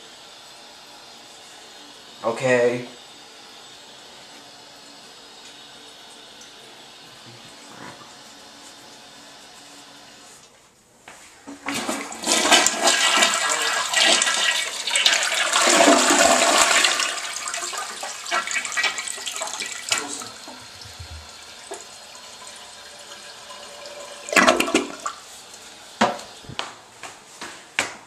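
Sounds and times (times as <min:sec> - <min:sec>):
toilet flushing: 0:00.0 - 0:10.6, 0:11.4 - 0:26.6.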